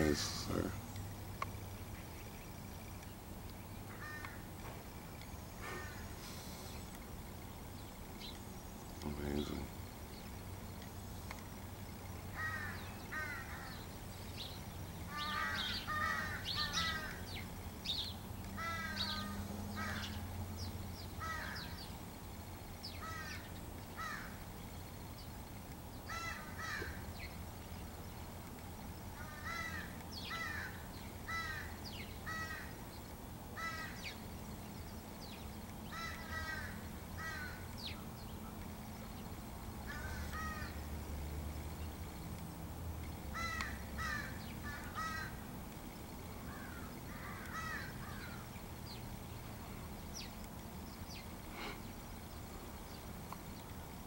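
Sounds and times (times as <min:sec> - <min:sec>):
crows cawing: 0:03.9 - 0:04.5, 0:05.6 - 0:06.2, 0:12.3 - 0:13.9, 0:15.1 - 0:17.4, 0:18.6 - 0:20.2, 0:21.2 - 0:21.8, 0:23.0 - 0:24.4, 0:26.1 - 0:27.1, 0:29.1 - 0:32.8, 0:33.6 - 0:34.1, 0:35.9 - 0:37.7, 0:39.8 - 0:40.9, 0:43.3 - 0:45.5, 0:46.5 - 0:48.5.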